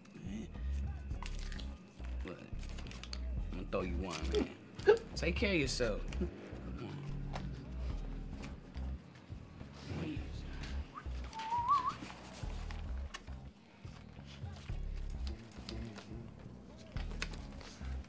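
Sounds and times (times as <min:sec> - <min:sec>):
bass-heavy background music: 0:00.1 - 0:18.0.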